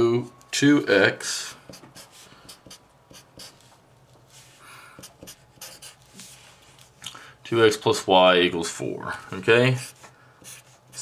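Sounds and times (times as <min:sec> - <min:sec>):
marker writing on paper: 0:01.6 - 0:03.7, 0:05.0 - 0:06.3, 0:09.8 - 0:11.0.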